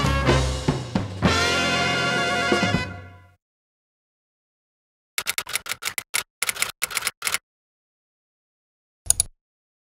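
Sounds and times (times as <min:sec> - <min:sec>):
keystroke clicks: 0:05.2 - 0:07.4, 0:09.1 - 0:09.3.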